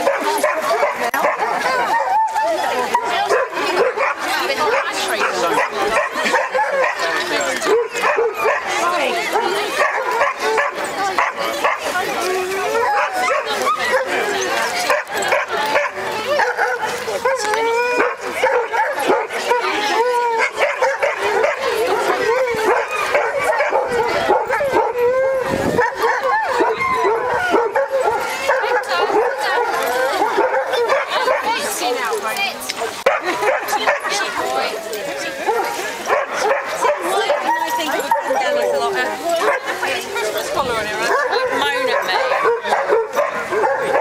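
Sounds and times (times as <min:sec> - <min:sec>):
dogs barking and whining: 0:00.0 - 0:32.2, 0:33.0 - 0:44.0
people talking: 0:00.0 - 0:44.0.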